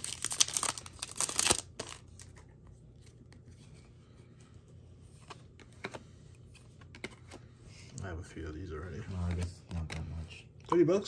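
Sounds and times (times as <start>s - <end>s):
foil wrapper tearing and crinkling: 0.0s - 2.2s
cards clicking and rustling: 0.0s - 3.7s, 5.1s - 7.6s.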